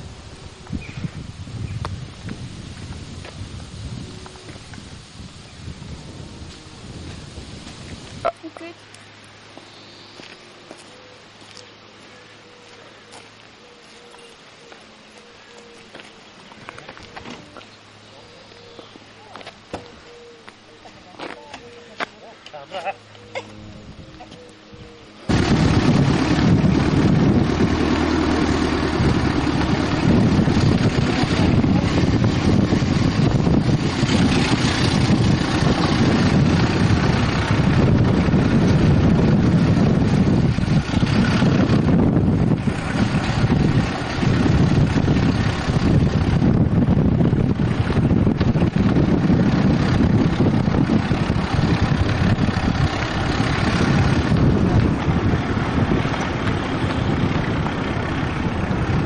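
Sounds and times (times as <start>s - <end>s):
wind buffeting microphone: 0.0s - 8.3s, 23.5s - 59.0s
car driving slowly: 0.0s - 59.0s.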